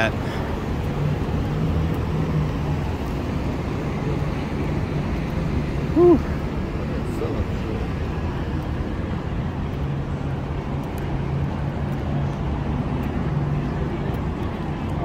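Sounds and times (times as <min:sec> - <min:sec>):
city street traffic: 0:00.0 - 0:15.0
passers-by voices: 0:00.0 - 0:15.0.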